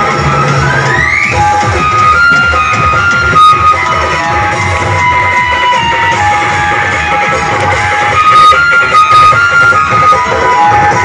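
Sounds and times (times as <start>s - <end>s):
loud music through horn loudspeaker: 0.0s - 11.0s.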